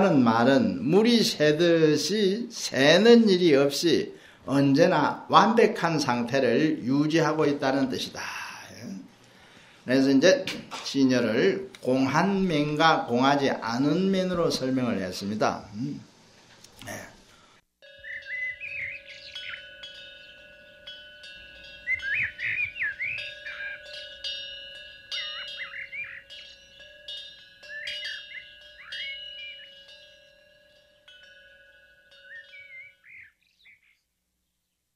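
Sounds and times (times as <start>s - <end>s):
birds chirping: 10.8s - 34.9s
metal chime ringing: 17.8s - 33.4s.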